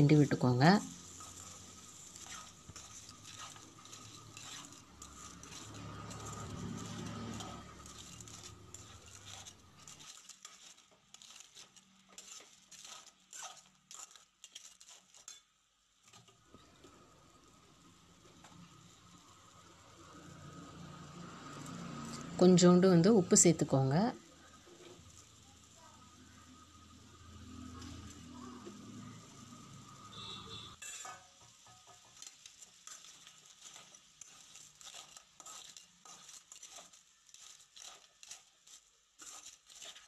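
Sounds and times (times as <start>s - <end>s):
metal ladle clicking and scraping pan: 0.9s - 16.3s, 30.8s - 40.0s.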